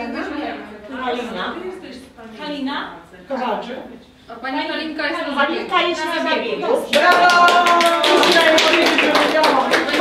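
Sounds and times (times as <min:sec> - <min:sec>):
people clapping: 0:06.8 - 0:10.0.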